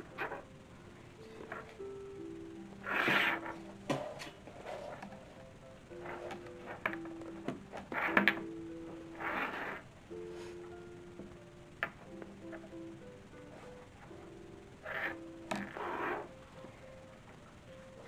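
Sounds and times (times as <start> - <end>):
slow background music: 0.0 - 18.0.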